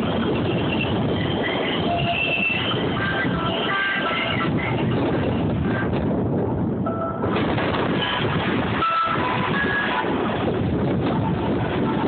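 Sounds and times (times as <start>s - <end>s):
train rumbling on track: 0.0s - 12.0s.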